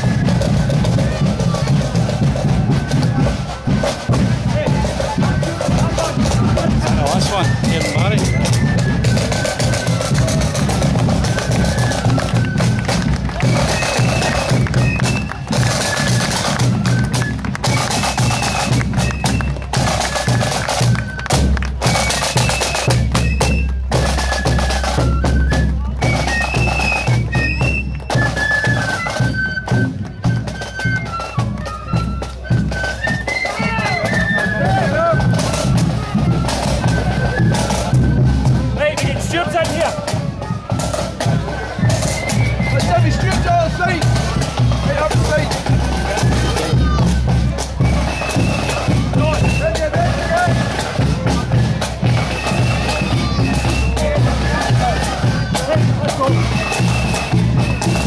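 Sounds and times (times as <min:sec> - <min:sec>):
flutes playing melody: 0:00.0 - 0:58.0
marching drums beat: 0:00.0 - 0:58.0
bass drum: 0:34.6 - 0:58.0.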